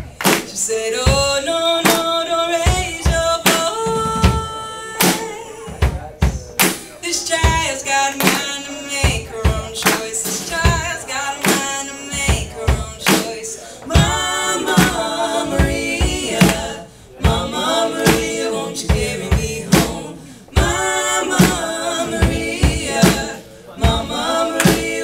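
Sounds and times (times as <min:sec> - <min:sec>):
drum kit beat: 0:00.0 - 0:25.0
person singing: 0:07.1 - 0:25.0.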